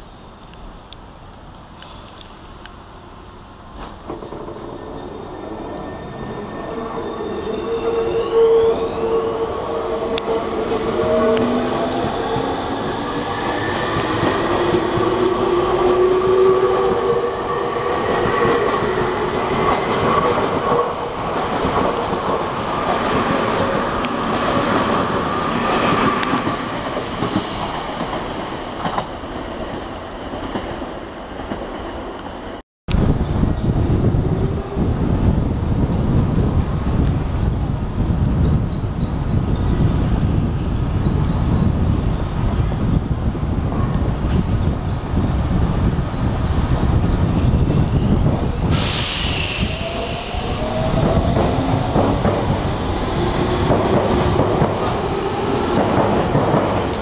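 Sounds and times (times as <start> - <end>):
train rumble and wheel noise: 0.0 - 57.0.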